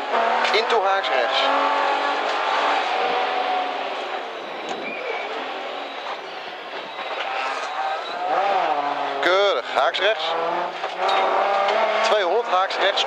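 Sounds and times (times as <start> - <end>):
car engine pulling at speed: 0.0 - 13.0
road and tyre noise: 0.0 - 13.0.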